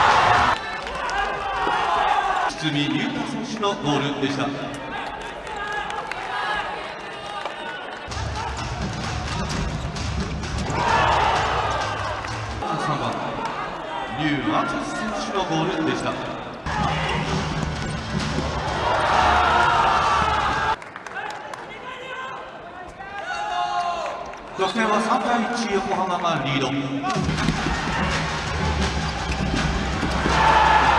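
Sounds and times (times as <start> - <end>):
crowd noise in a large hall: 0.0 - 30.9.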